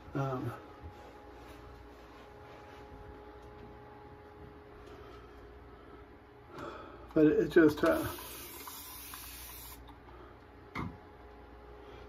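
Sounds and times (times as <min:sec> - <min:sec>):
steady hiss: 0:07.7 - 0:09.8.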